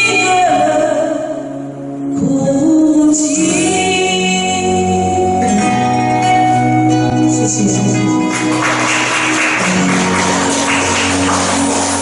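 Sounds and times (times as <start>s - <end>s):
woman singing into a microphone: 0.0s - 6.4s
ballad backing track: 0.0s - 12.0s.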